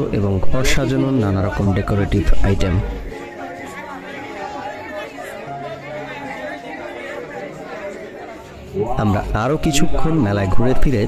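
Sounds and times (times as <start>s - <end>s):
crowd of people talking: 0.0s - 11.0s.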